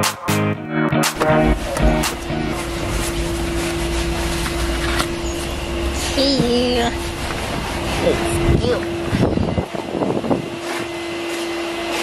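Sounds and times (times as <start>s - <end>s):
background music: 0.0s - 2.6s
car interior mechanical hum: 1.4s - 12.0s.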